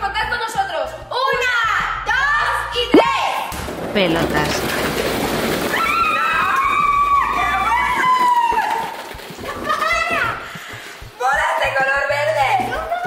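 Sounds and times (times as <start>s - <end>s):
plastic balls pattering down: 3.7s - 10.9s
people squealing: 5.7s - 9.1s.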